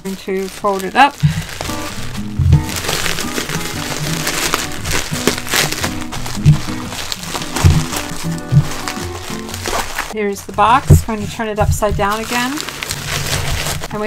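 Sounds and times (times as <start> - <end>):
bubble wrap crinkling: 0.0 - 14.0
background music: 1.3 - 13.3.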